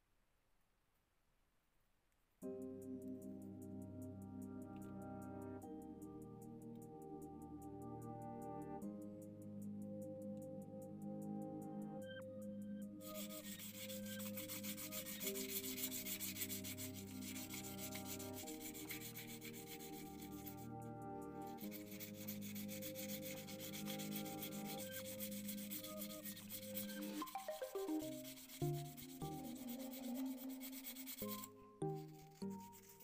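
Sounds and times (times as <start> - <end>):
background music of held chords: 2.4 - 33.0
sandpaper rubbing on wood: 13.0 - 20.6, 21.5 - 33.0.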